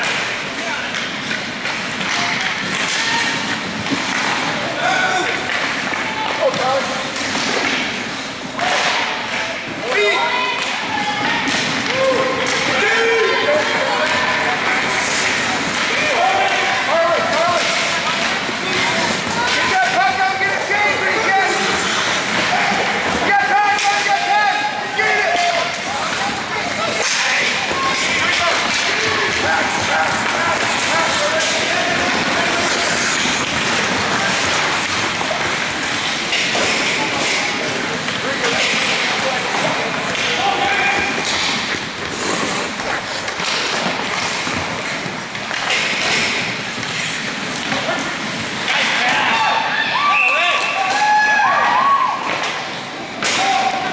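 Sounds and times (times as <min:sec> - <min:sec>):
hockey stick hitting puck: 0:00.0 - 0:49.2, 0:53.2 - 0:53.8
skates scraping ice: 0:00.0 - 0:53.9
shouting voices: 0:02.0 - 0:07.2, 0:08.5 - 0:42.3, 0:47.6 - 0:52.6
hiss of skates on ice: 0:42.0 - 0:43.2.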